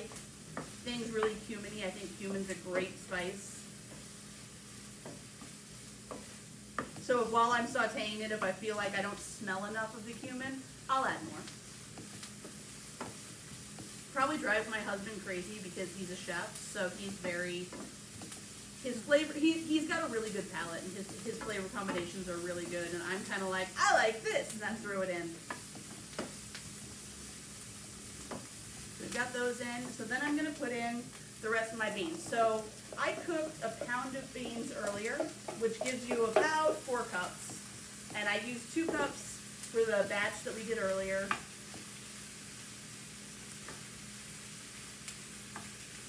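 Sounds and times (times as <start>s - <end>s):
faint sizzle in skillet: 0.0s - 46.0s
spoon scraping pan: 29.8s - 39.9s
spoon stirring: 31.9s - 36.9s.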